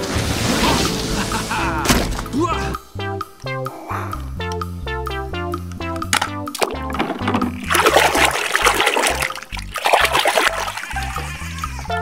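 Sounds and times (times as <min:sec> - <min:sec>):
background music with bass line: 0:00.5 - 0:12.0
water splashing in plastic tub: 0:06.6 - 0:11.5.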